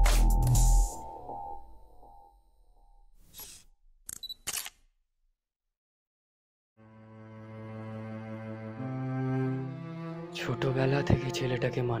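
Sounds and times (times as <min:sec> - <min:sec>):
camera shutter click: 0:04.1 - 0:04.8.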